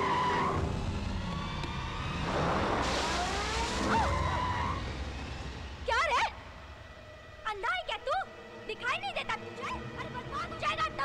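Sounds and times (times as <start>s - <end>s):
car tyres squealing: 0.0s - 5.6s.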